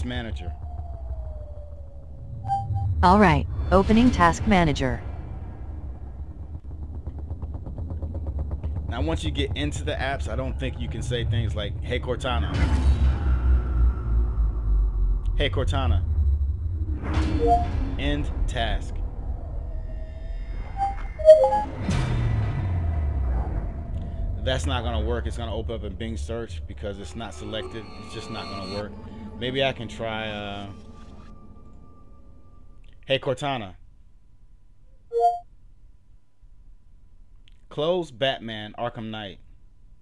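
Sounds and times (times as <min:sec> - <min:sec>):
low rumble: 0:00.0 - 0:33.8
two-tone electronic chime: 0:35.1 - 0:35.4.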